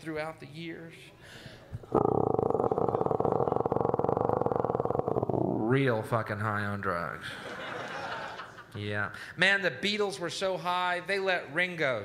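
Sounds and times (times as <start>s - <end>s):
man rolling an r: 1.8s - 6.0s.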